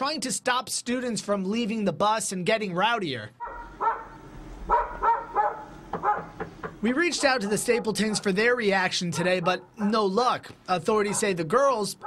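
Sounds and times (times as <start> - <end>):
dog barking: 3.4 - 6.4, 7.2 - 8.4, 9.1 - 9.9, 11.0 - 11.4.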